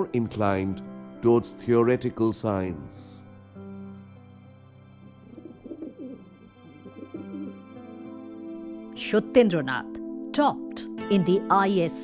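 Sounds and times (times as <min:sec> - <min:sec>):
soft background music: 0:00.0 - 0:12.0
pigeons cooing: 0:05.2 - 0:07.6.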